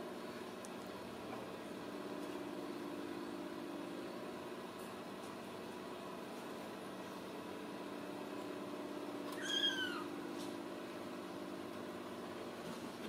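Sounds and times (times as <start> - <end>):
steady low hum: 0.0 - 13.0
kitten meowing: 9.3 - 10.1.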